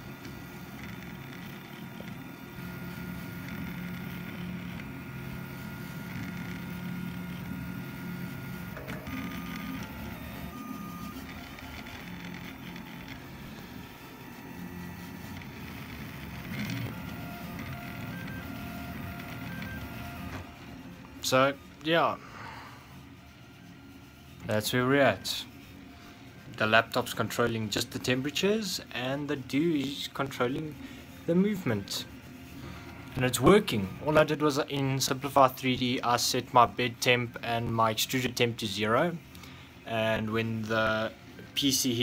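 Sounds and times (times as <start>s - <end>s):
low machine hum: 0.0s - 34.5s
stepper motors whining: 0.0s - 35.3s.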